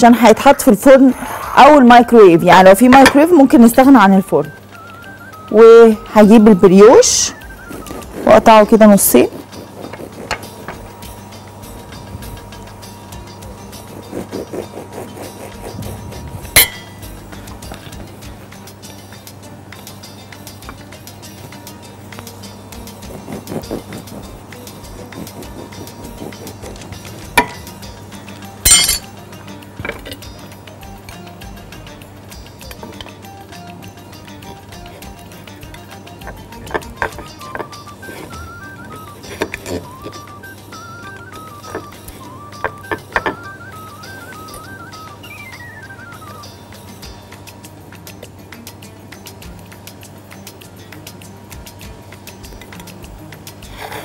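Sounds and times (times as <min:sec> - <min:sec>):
background music: 0:00.0 - 0:54.0
glass bakeware clinking: 0:28.7 - 0:29.1.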